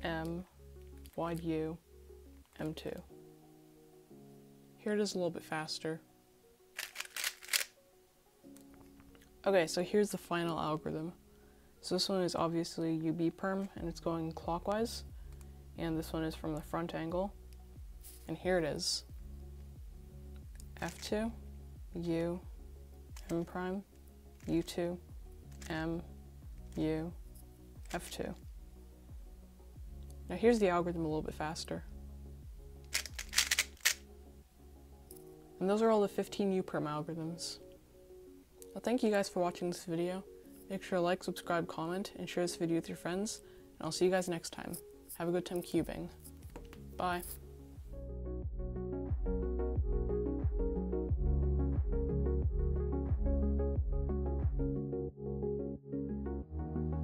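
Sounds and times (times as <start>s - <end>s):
background music: 0.0s - 57.0s
speed cube turning clicks: 6.8s - 7.7s, 32.9s - 34.0s.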